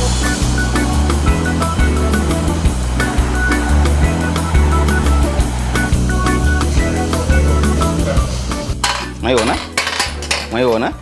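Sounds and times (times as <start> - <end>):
glass marbles clattering: 8.8 - 10.6
marbles rolling with ring: 8.8 - 10.6.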